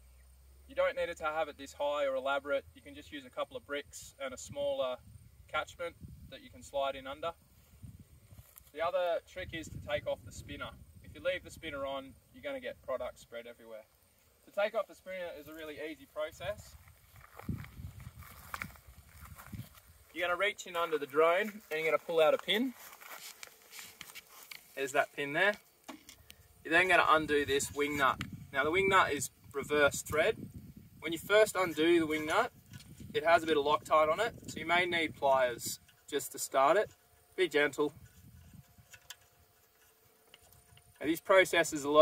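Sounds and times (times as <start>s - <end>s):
faint handling sounds: 7.5s - 9.2s, 13.8s - 28.4s, 35.8s - 41.3s
footsteps in dry grass: 7.7s - 8.8s, 15.4s - 26.6s.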